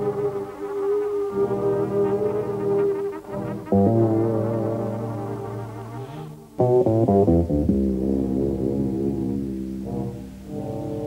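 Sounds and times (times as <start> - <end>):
brass ensemble sustained chords: 0.0 - 11.0.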